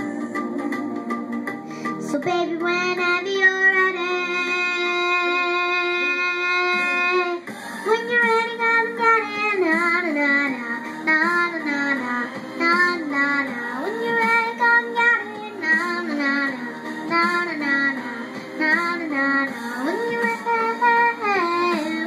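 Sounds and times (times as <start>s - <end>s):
girl singing wordless melody: 0.0s - 22.0s.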